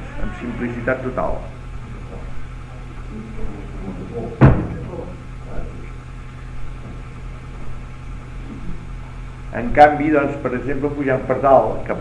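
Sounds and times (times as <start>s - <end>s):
low mains hum: 0.0s - 12.0s
loud thump: 4.4s - 5.0s.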